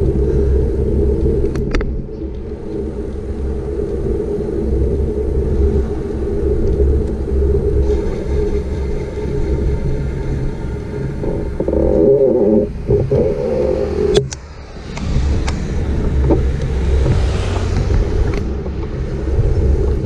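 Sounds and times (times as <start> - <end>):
tyre and road noise: 0.0 - 20.0
wind buffeting microphone: 0.0 - 20.0.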